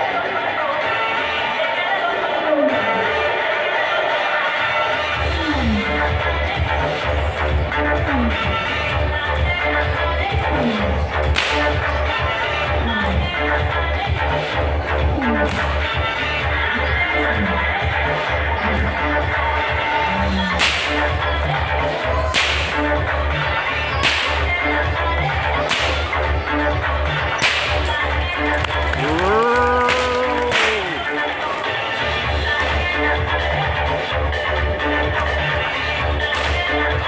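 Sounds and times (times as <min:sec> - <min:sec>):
music with steady beat: 0:05.5 - 0:37.0
whip cracking: 0:11.3 - 0:11.8, 0:15.5 - 0:15.8, 0:20.6 - 0:21.0, 0:22.3 - 0:22.8, 0:24.0 - 0:24.5, 0:25.6 - 0:26.1, 0:27.4 - 0:28.0, 0:29.8 - 0:31.1, 0:36.3 - 0:36.6.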